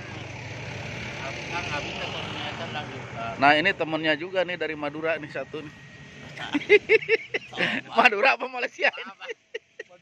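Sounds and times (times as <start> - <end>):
low engine hum: 0.0 - 7.9.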